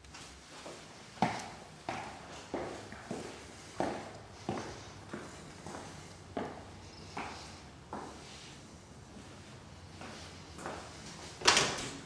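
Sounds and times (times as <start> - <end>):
footsteps indoors: 0.0 - 12.0.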